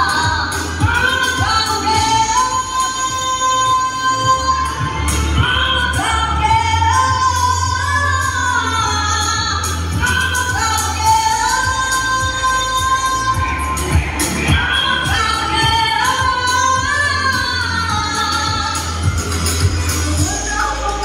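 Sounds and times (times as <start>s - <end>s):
amplified backing music: 0.0s - 21.0s
woman singing into a microphone: 0.0s - 21.0s.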